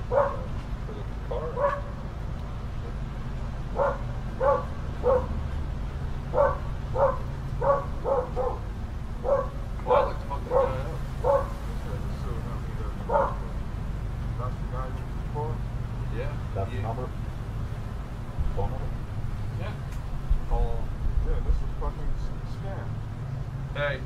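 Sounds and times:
dog barking: 0:00.1 - 0:00.5, 0:01.3 - 0:02.0, 0:03.7 - 0:05.4, 0:06.3 - 0:11.6, 0:13.0 - 0:13.5.

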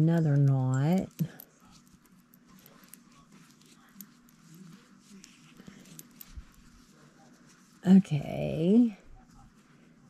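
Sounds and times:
yarn rustling and clicking: 0:00.0 - 0:08.0.

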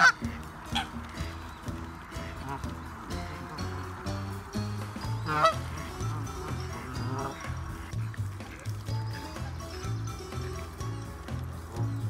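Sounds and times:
goose honk: 0:00.0 - 0:10.8
background music: 0:00.0 - 0:12.0.

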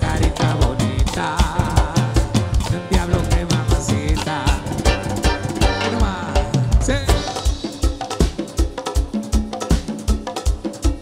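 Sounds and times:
drums and congas beat: 0:00.0 - 0:11.0
keyboards: 0:00.0 - 0:11.0
live cuarteto band playing: 0:00.0 - 0:11.0.

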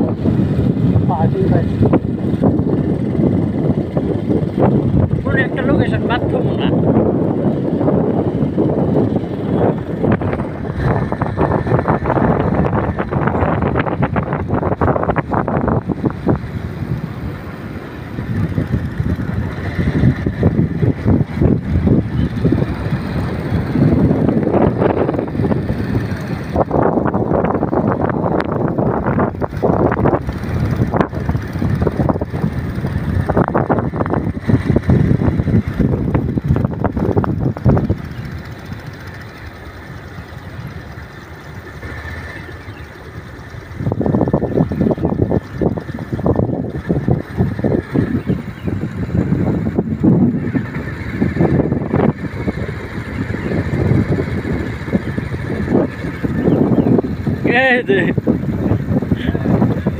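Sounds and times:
motorcycle engine: 0:00.0 - 0:59.9
wind buffeting microphone: 0:00.0 - 0:59.9.

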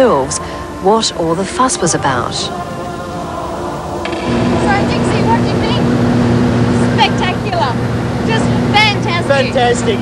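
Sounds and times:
passengers talking: 0:00.0 - 0:10.0
plane engine and propeller droning: 0:01.7 - 0:10.0.

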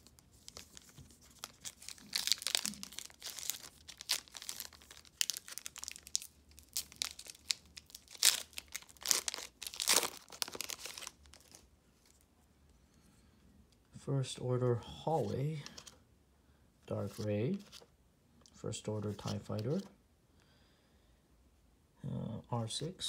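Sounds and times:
foil wrapper crackling: 0:00.0 - 0:11.6.

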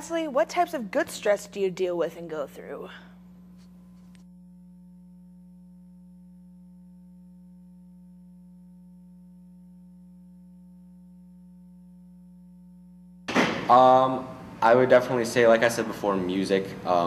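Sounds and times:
electrical hum: 0:00.0 - 0:17.0.

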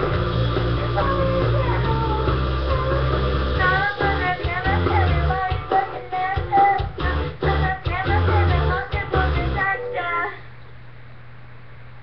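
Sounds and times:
pop music: 0:00.0 - 0:10.3
girl singing pop song: 0:00.0 - 0:10.5
steady low hum: 0:00.0 - 0:12.0.

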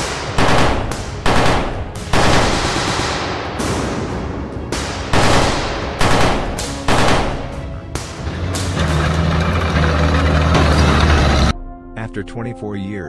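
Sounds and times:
rapid rifle fire bursts: 0:00.0 - 0:03.5, 0:05.1 - 0:07.8
loud ringing bangs: 0:00.4 - 0:07.9.

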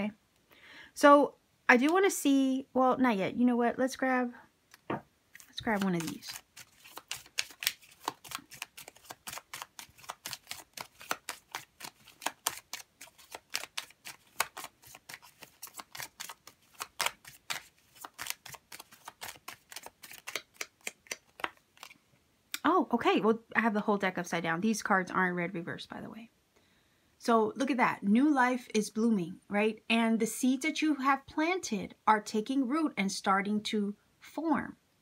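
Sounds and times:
cards being shuffled: 0:04.8 - 0:22.0.

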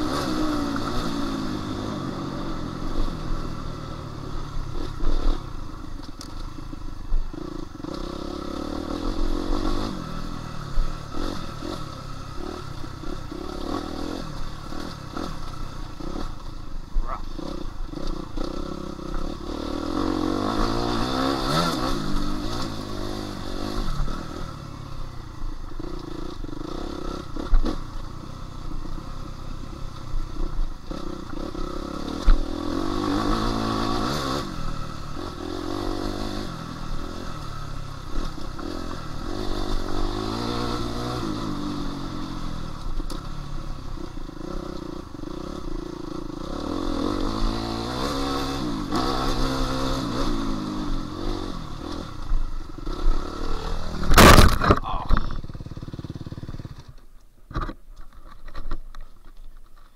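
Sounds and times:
motorcycle engine revving: 0:00.0 - 0:57.8.

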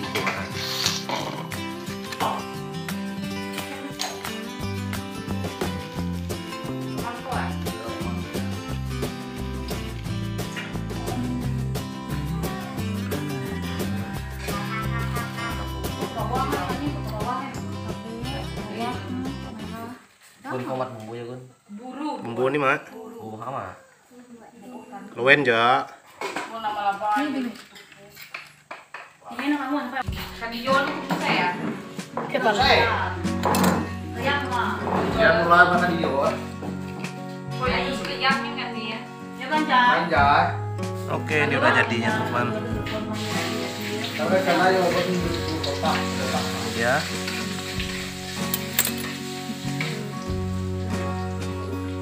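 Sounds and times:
background music with long held notes: 0:00.0 - 0:19.9, 0:30.1 - 0:52.0
crackling hiss: 0:00.4 - 0:02.2, 0:43.1 - 0:51.9
metal lid clinking: 0:48.5 - 0:49.2.

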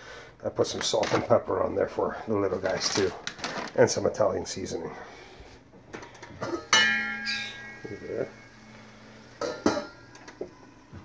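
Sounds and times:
metal lid clinking on pan: 0:06.4 - 0:10.2.

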